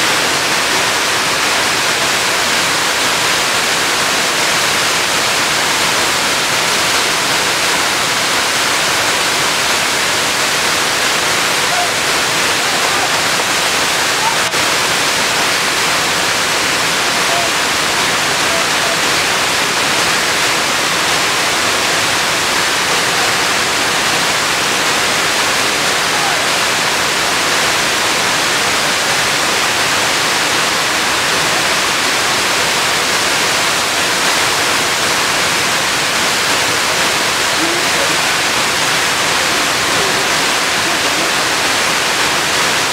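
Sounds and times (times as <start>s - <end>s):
waterfall rushing: 0.0s - 42.9s.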